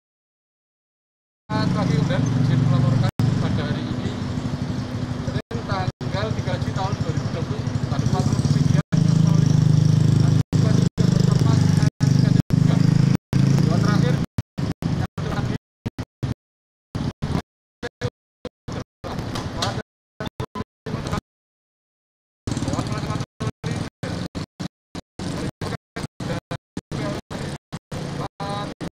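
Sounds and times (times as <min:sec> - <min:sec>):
engine rumble: 0:01.5 - 0:15.6, 0:22.5 - 0:24.5
person talking: 0:13.6 - 0:14.3, 0:14.9 - 0:15.6.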